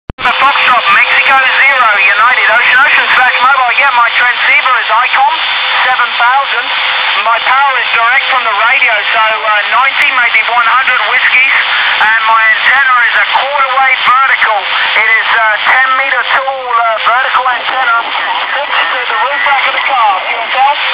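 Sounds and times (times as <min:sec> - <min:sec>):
radio voice through speaker: 0:00.2 - 0:20.9.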